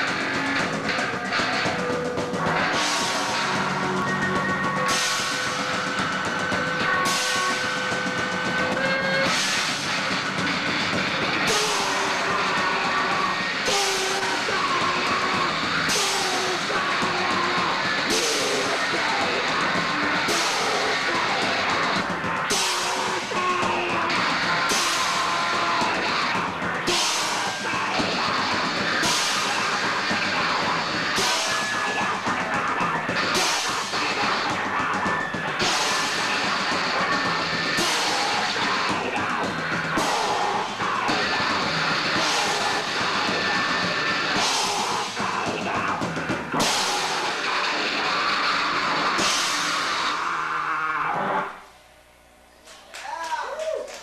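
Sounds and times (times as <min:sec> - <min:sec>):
band playing noise rock: 0:00.0 - 0:54.0.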